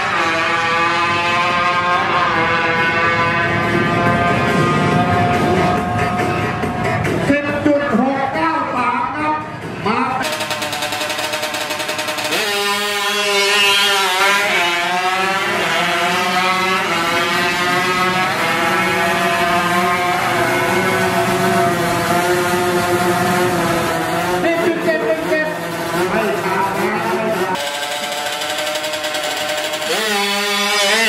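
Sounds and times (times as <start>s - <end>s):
motorbike engine accelerating: 0.0s - 7.8s, 9.5s - 31.0s.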